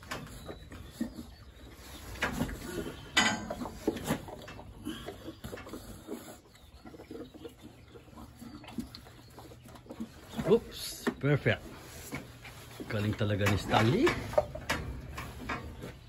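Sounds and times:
knocks and rattles: 0:13.2 - 0:16.0.

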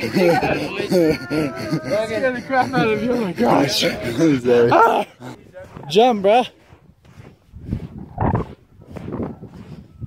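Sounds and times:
heavy gasping breaths: 0:00.0 - 0:05.8, 0:06.5 - 0:09.8
footfalls in loose sand: 0:05.2 - 0:10.0.

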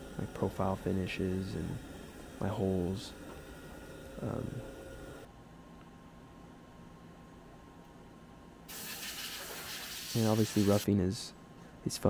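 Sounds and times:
machine high hiss: 0:08.7 - 0:10.9.

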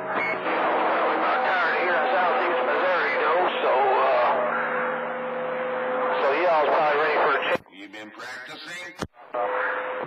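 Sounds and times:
radio static hiss: 0:00.1 - 0:04.4, 0:06.1 - 0:10.0.

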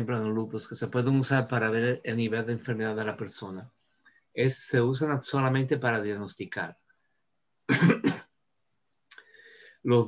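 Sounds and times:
man clearing throat: 0:07.7 - 0:08.3.

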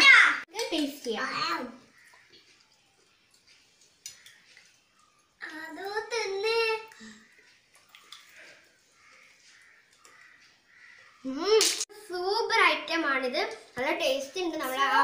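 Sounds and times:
spoons clicking against plate: 0:03.3 - 0:05.1
young child's voice: 0:05.4 - 0:07.1, 0:11.2 - 0:15.0.

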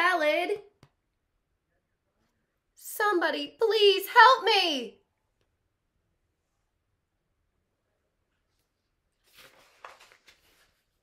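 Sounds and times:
paper crackle: 0:08.5 - 0:11.0
paper page turning: 0:08.5 - 0:11.0.

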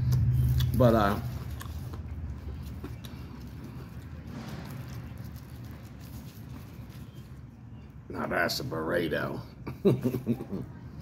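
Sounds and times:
steady low rumble: 0:00.0 - 0:08.1
wrapper rustling and crinkling: 0:03.4 - 0:07.4.

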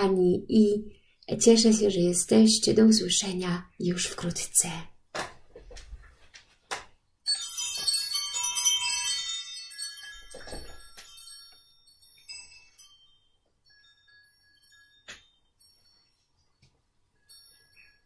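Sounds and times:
chimes ringing: 0:07.2 - 0:18.0.

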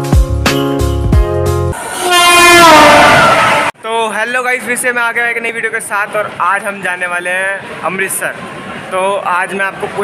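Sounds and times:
background music with beat: 0:00.0 - 0:01.8
passing train rushing: 0:01.7 - 0:03.8, 0:05.8 - 0:10.0
train horn blowing: 0:01.8 - 0:03.7.

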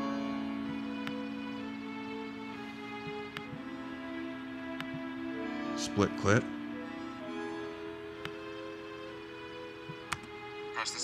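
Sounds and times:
video game music with held tones: 0:00.0 - 0:11.0.

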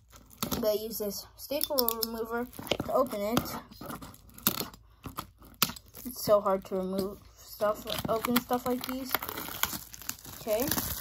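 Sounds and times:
faint scraping on shrink wrap: 0:02.2 - 0:11.0.

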